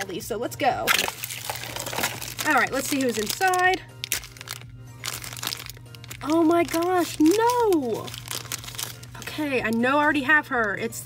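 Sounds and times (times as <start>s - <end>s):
faint background music: 0.0s - 11.0s
foil packet crinkling: 0.9s - 10.8s.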